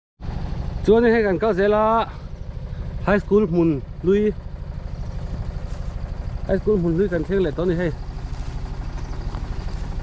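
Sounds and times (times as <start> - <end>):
engine running steadily: 0.2 - 10.0.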